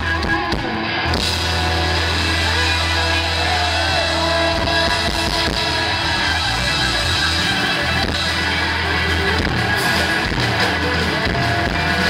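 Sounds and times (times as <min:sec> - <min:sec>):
drumming: 0:00.0 - 0:12.0
electric guitar bending notes: 0:00.0 - 0:12.0.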